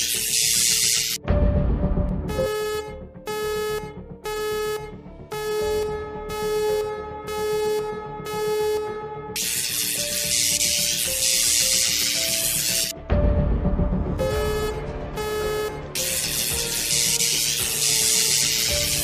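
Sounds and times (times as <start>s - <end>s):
electronic music synth chords: 1.7s - 13.0s, 14.2s - 19.0s.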